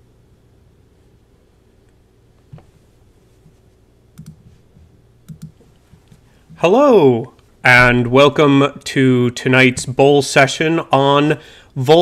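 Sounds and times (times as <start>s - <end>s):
low steady hum: 0.0s - 12.0s
computer mouse double click: 4.2s - 4.4s, 5.3s - 5.6s.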